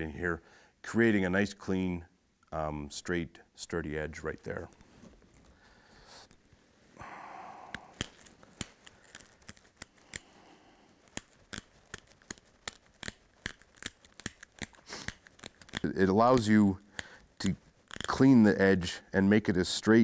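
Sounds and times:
stone flaking clicks and snaps: 7.7s - 18.3s.

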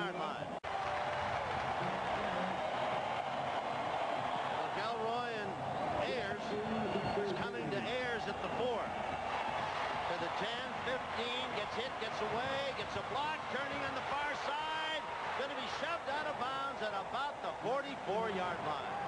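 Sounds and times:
stadium crowd noise: 0.0s - 19.0s
men talking: 4.6s - 8.9s, 10.0s - 19.0s.

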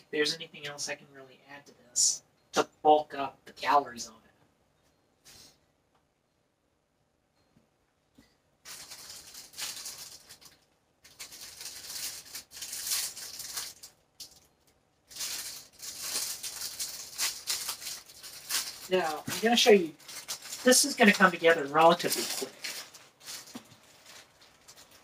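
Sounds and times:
plastic packaging crinkling: 8.6s - 25.0s.

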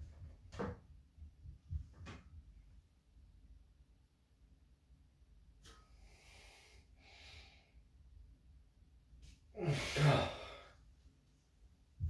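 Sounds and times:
man breathing hard: 5.9s - 7.8s, 9.6s - 10.9s
man sighing loudly: 9.6s - 10.7s.

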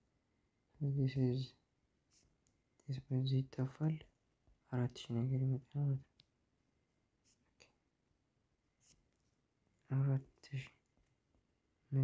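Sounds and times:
man speaking: 0.8s - 1.6s, 2.8s - 4.1s, 4.7s - 6.1s, 9.8s - 10.8s.

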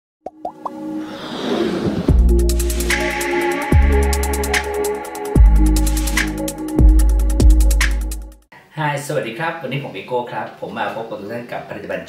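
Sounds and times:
quick rising pops: 0.4s - 3.0s
whoosh: 1.0s - 3.2s
electronic music: 2.1s - 8.4s.

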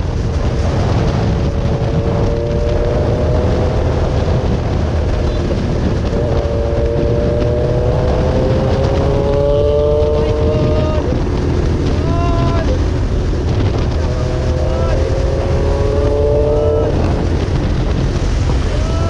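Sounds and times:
motorcycle engine accelerating: 0.0s - 18.8s
wind buffeting microphone: 0.0s - 19.0s.

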